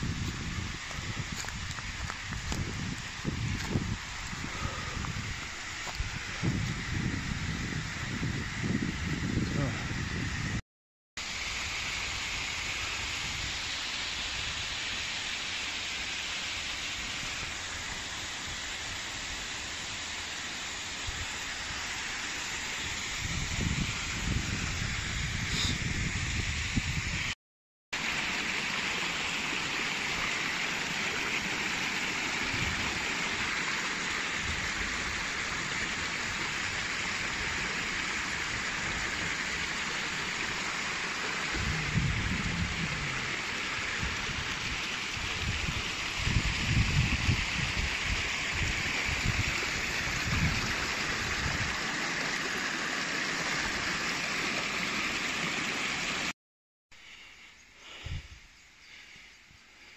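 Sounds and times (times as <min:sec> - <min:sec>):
stream rushing over rock: 0:00.0 - 0:07.0, 0:28.0 - 0:56.3.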